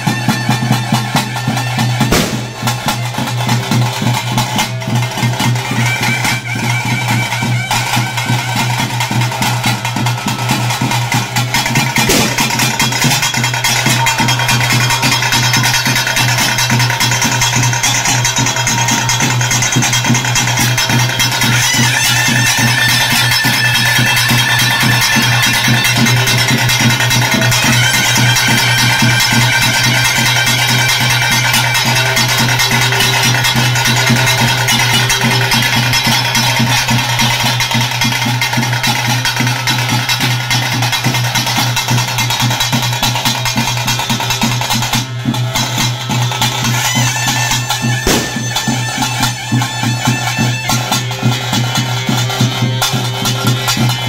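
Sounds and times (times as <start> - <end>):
fast dense drumming: 0.0 - 5.7, 7.8 - 50.7
sustained melody line: 31.8 - 37.4, 47.8 - 49.6.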